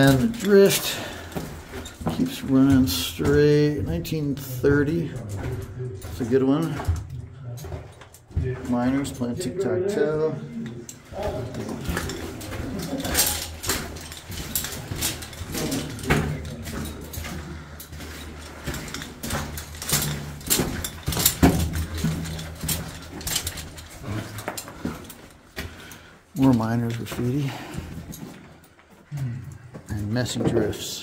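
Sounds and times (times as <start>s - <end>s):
footsteps crunching on rocky floor: 0.0s - 9.3s
gear clicks and knocks: 0.0s - 9.6s, 10.6s - 30.9s.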